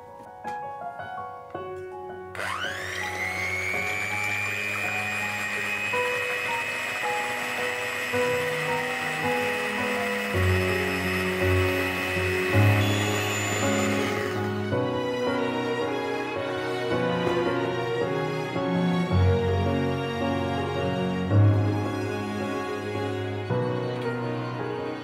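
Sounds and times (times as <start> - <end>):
background music: 0.0 - 25.0
electric hand mixer whining: 2.3 - 23.8.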